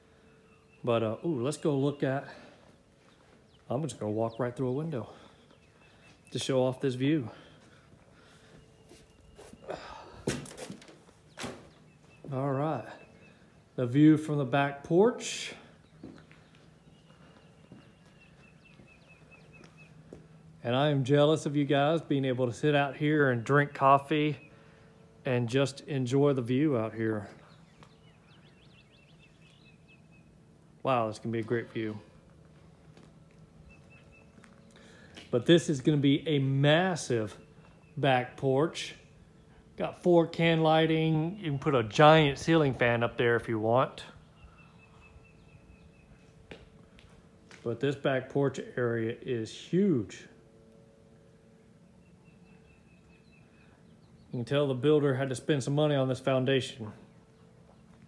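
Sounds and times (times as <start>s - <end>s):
distant bird call: 0.0s - 14.4s, 23.2s - 25.2s, 31.8s - 35.4s, 44.0s - 47.4s, 50.6s - 54.4s
distant bird singing: 0.0s - 58.0s.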